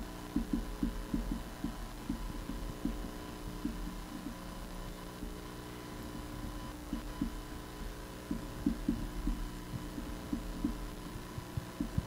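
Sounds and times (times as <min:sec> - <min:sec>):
electrical hum: 0:00.0 - 0:12.0
muffled low thuds: 0:00.4 - 0:04.5, 0:06.1 - 0:12.0.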